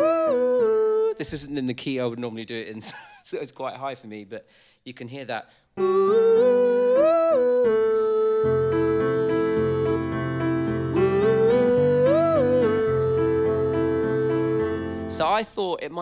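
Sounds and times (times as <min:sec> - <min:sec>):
man singing: 0:00.0 - 0:02.6, 0:05.2 - 0:10.2, 0:10.9 - 0:16.0
piano chords: 0:05.8 - 0:15.4.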